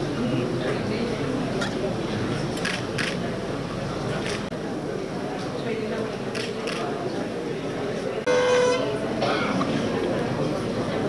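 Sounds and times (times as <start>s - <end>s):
crowd murmur: 0.0s - 11.0s
faint tone: 8.3s - 9.1s
horn-like toot: 8.3s - 9.1s.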